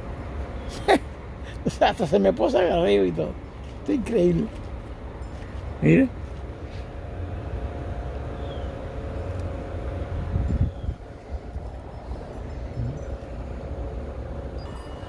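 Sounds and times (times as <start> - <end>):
faint steady hum: 0.0 - 15.0
low outdoor rumble: 0.0 - 15.0.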